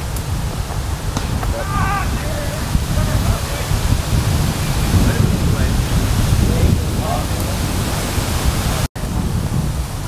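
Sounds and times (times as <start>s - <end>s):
wind buffeting microphone: 0.0s - 10.0s
distant shout: 1.5s - 3.6s.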